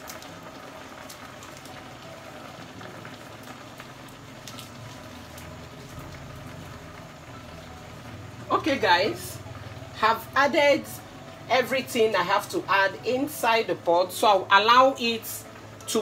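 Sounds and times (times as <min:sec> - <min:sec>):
meat sizzling in a pot: 0:00.0 - 0:16.0.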